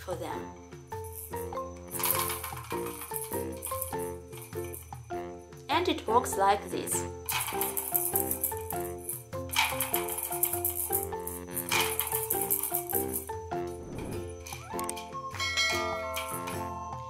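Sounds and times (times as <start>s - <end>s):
background music: 0.0s - 17.0s
plastic balls rattling in toy: 1.0s - 4.9s, 6.8s - 13.8s.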